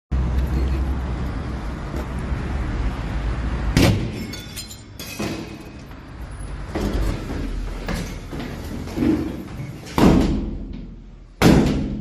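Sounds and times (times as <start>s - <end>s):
hurried footsteps thudding: 6.6s - 11.8s.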